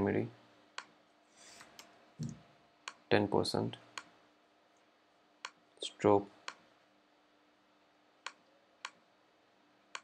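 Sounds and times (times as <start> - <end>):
mouse clicks: 8.2 - 9.0.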